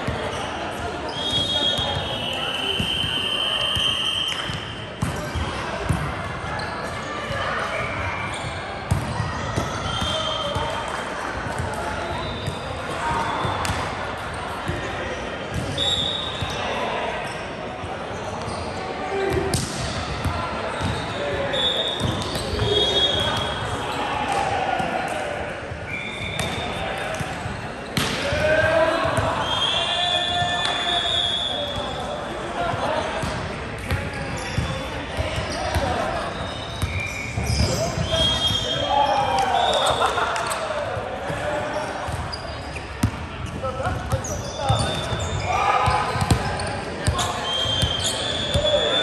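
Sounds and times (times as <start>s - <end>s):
volleyball being hit: 28.0s - 28.4s.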